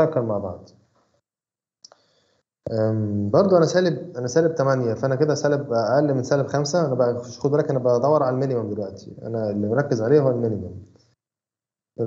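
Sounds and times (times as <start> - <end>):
man speaking: 0.0 - 0.7, 2.7 - 10.8.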